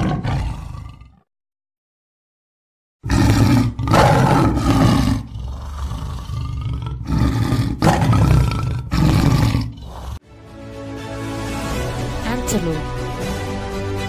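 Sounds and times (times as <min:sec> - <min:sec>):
leopard roaring: 0:00.0 - 0:01.2, 0:03.0 - 0:10.2.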